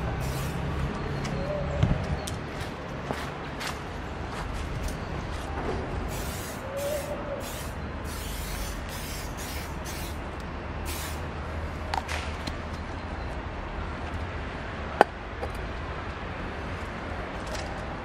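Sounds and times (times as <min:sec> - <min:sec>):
aerosol can spraying: 0:00.2 - 0:00.6, 0:06.1 - 0:10.2, 0:10.9 - 0:11.2.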